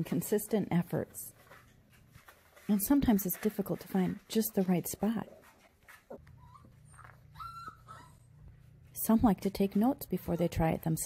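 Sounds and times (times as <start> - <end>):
puppy whining: 5.9 - 8.7.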